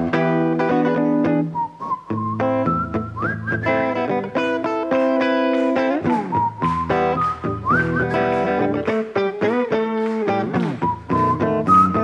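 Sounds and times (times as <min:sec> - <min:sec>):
electric guitar: 0:00.0 - 0:12.0
drums: 0:01.7 - 0:12.0.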